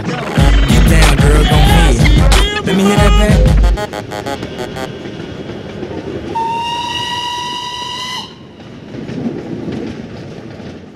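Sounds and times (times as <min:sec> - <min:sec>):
music: 0:00.0 - 0:04.9
steady rumbling noise: 0:00.0 - 0:10.9
held whistle-like tone: 0:06.3 - 0:08.4.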